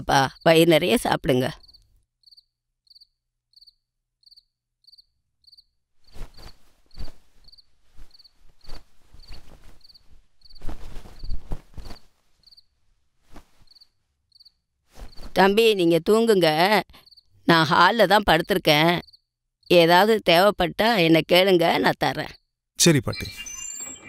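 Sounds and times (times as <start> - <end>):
cricket chirping: 0.0 - 12.7, 13.6 - 16.3, 16.9 - 20.5
cloth rustling: 6.0 - 14.2, 14.8 - 15.5.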